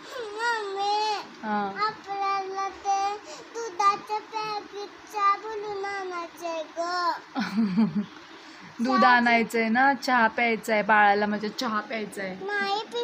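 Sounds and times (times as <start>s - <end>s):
child singing: 0.2s - 7.3s.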